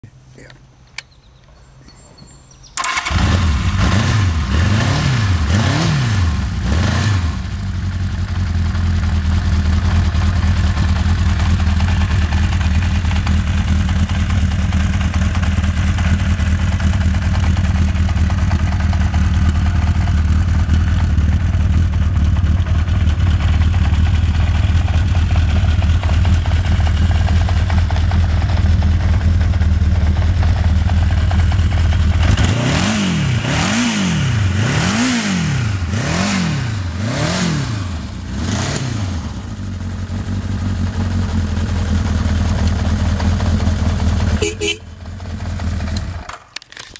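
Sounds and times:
motorcycle engine idling and revving: 2.2 - 46.9.

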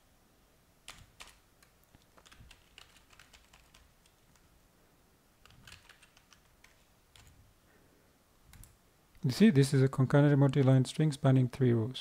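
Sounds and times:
faint typing on a keyboard: 0.8 - 4.6, 5.4 - 7.5, 8.4 - 9.3, 10.1 - 11.3.

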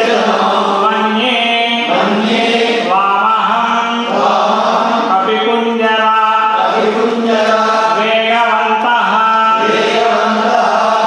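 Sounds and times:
priests chanting: 0.0 - 11.0.

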